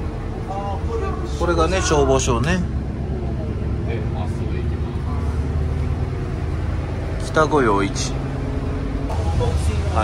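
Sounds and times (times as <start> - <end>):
bus engine drone: 0.0 - 10.0
road noise: 0.0 - 10.0.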